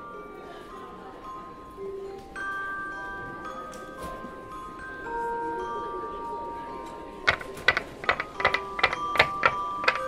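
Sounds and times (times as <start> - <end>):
soft music with bell-like tones: 0.0 - 10.0
plastic figure tapping on wood: 7.3 - 10.0.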